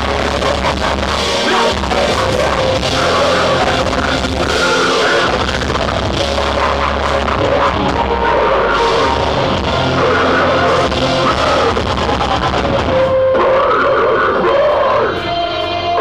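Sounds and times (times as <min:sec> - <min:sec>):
distorted guitars: 0:00.0 - 0:16.0
drums: 0:00.0 - 0:16.0
vocalist screaming: 0:07.3 - 0:12.5, 0:13.3 - 0:16.0.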